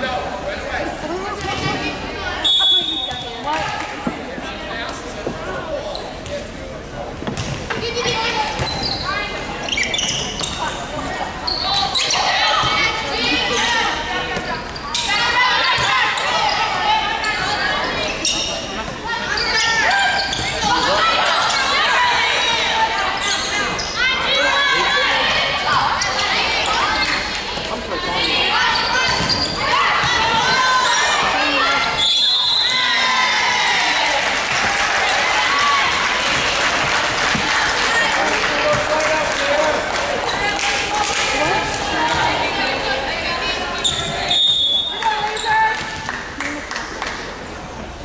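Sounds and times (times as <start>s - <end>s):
people calling out and cheering: 11.3s - 46.8s.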